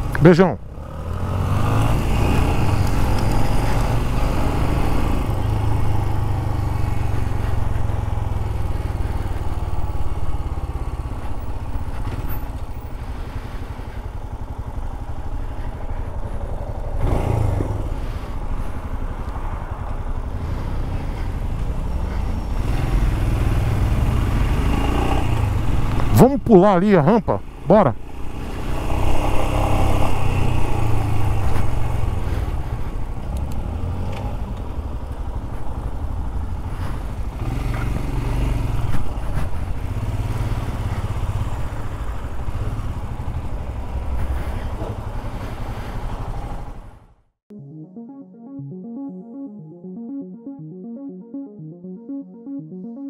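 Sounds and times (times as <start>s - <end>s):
motorcycle engine running: 0.0s - 26.2s.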